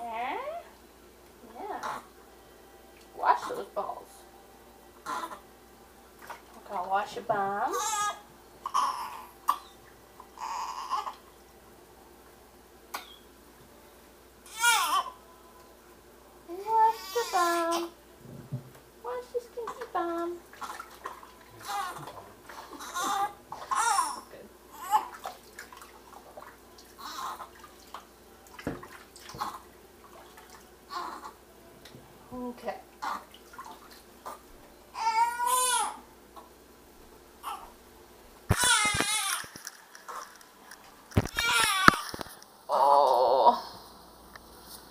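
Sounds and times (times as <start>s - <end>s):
newborn baby fussing: 1.8s - 2.2s, 5.0s - 5.4s, 7.7s - 11.2s, 14.4s - 15.2s, 16.6s - 18.0s, 21.6s - 25.2s, 27.0s - 27.6s, 30.9s - 31.4s, 33.0s - 33.4s, 34.2s - 36.0s, 37.4s - 37.7s, 38.5s - 39.5s, 41.2s - 42.2s
baby fussing: 5.0s - 5.4s, 7.8s - 9.7s, 10.4s - 11.2s, 22.8s - 25.1s, 38.5s - 39.4s.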